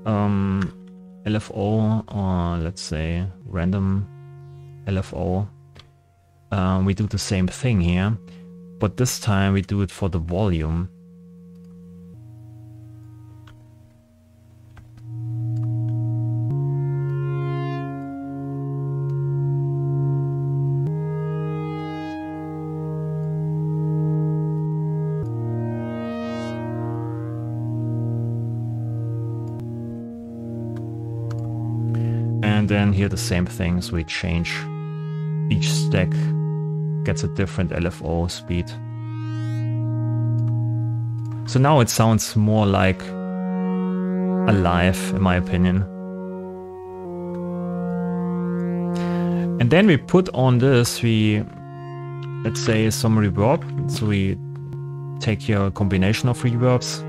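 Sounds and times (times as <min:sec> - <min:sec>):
synth playing sustained chords: 0:00.0 - 0:57.0.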